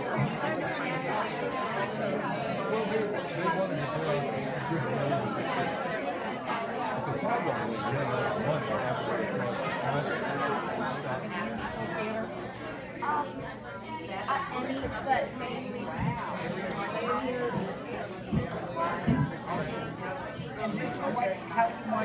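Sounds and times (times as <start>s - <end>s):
overlapping chatter of many people: 0.0s - 22.0s.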